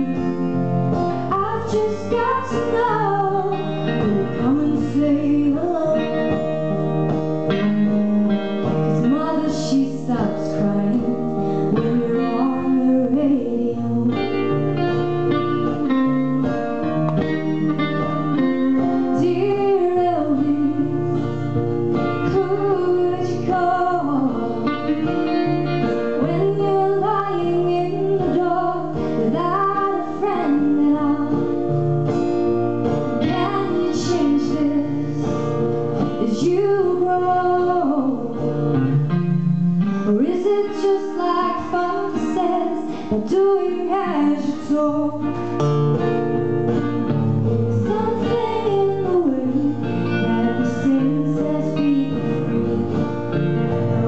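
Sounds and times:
woman singing: 0.0 - 7.0, 8.6 - 16.5, 17.8 - 31.8, 33.1 - 38.6, 40.0 - 45.5, 47.6 - 53.0
acoustic guitar: 0.0 - 54.0
electric guitar: 0.0 - 54.0.

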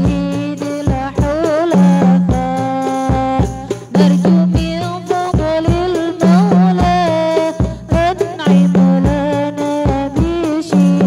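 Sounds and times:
frame drums: 0.0 - 11.0
women singing devotional song: 0.0 - 11.0.

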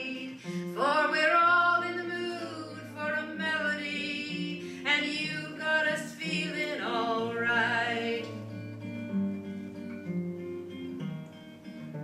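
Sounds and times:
woman singing wordless melody: 0.0 - 8.4
strummed acoustic guitar: 0.0 - 12.0.

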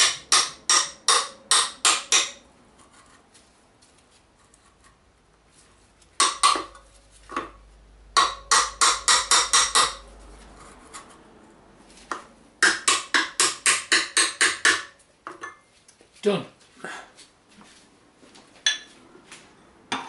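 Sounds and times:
hammer tapping metal bar: 0.0 - 2.4, 6.2 - 6.8, 8.2 - 10.1, 12.1 - 15.6.

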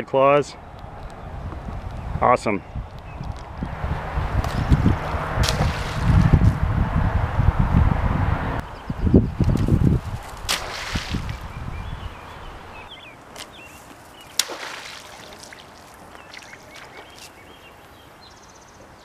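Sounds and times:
wind buffeting microphone: 0.6 - 13.6.

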